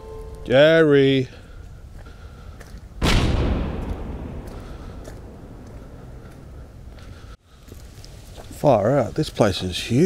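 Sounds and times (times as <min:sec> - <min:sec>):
explosion boom: 0:03.0 - 0:06.6.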